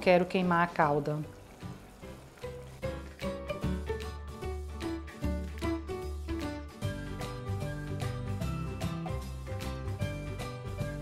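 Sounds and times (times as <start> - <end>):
syrup sizzling in saucepan: 0.0 - 11.0
background music with low bass: 2.8 - 11.0.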